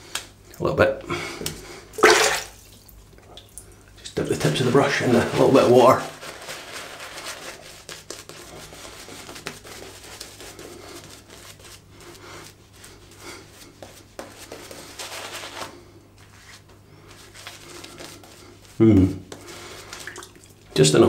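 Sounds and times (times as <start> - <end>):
shaving brush rubbing lather: 4.4 - 20.1.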